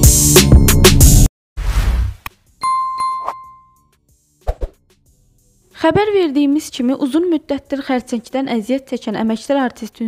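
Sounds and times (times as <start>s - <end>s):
bell-like ding: 2.6s - 3.9s.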